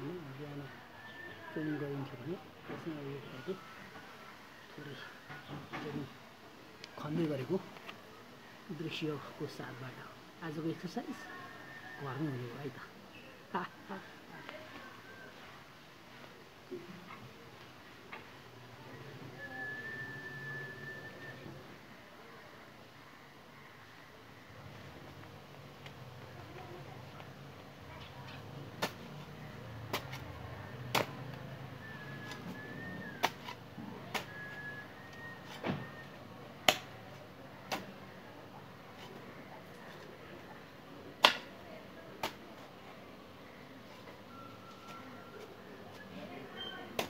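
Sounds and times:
steady high whistle: 19.4s - 21.6s, 31.8s - 33.2s, 34.2s - 36.1s
hoe striking soil: 29.9s - 35.7s.

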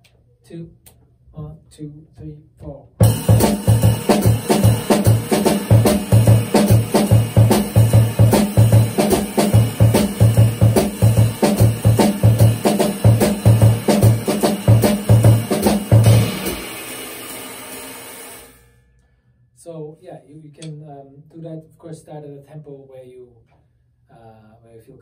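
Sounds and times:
bass drum hits: 3.0s - 16.8s
cymbal strokes: 16.0s - 19.4s.

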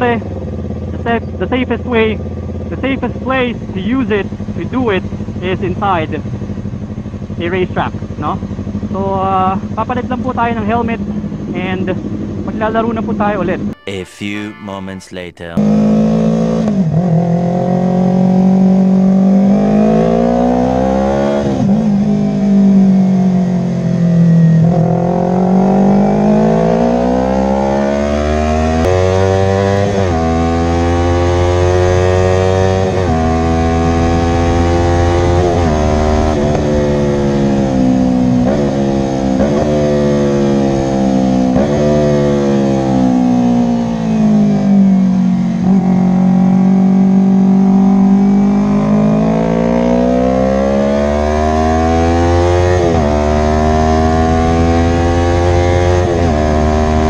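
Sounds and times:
motorcycle engine revving: 15.7s - 57.0s.

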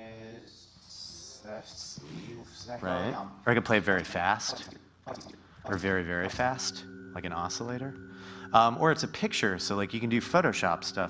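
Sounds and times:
garbled voice played backwards: 4.4s - 7.4s.

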